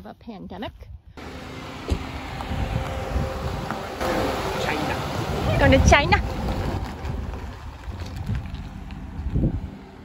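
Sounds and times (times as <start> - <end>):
vehicle engine and tyres rumbling: 1.2 - 10.0
wind buffeting microphone: 1.8 - 10.0.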